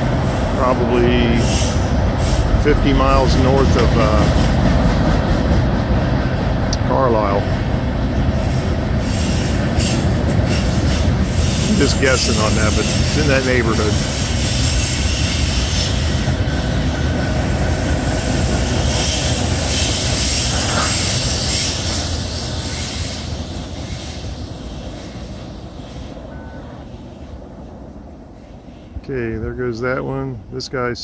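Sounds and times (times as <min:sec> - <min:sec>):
freight train rolling past: 0:00.0 - 0:31.0.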